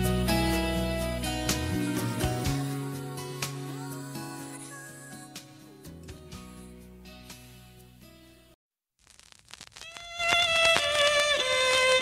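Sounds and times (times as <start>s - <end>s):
violin holding high note: 9.8s - 12.0s.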